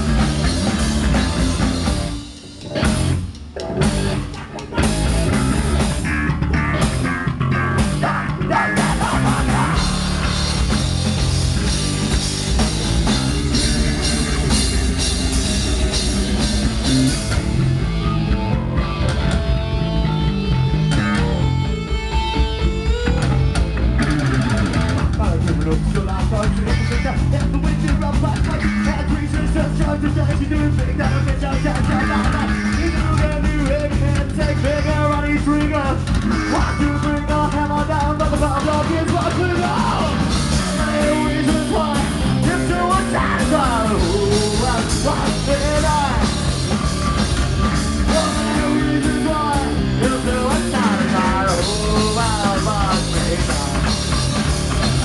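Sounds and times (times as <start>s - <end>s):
drum kit: 0.0s - 55.0s
electric guitars: 0.0s - 55.0s
person singing: 7.8s - 10.2s, 25.2s - 46.4s, 47.9s - 54.1s.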